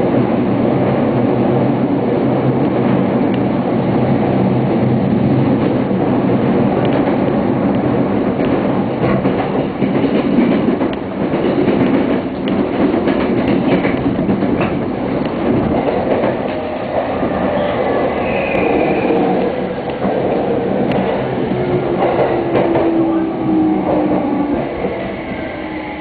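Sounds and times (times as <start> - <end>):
train wheels rumbling on rail: 0.0 - 26.0
rail joint clicks: 2.6 - 3.6, 5.4 - 25.9.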